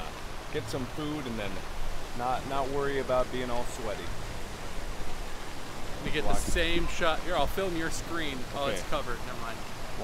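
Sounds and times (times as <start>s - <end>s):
fountain water splashing: 0.0s - 10.0s.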